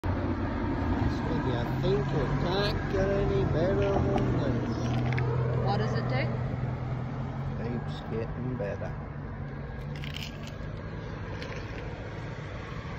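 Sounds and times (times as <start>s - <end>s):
vehicle engine idling hum: 0.0s - 12.9s.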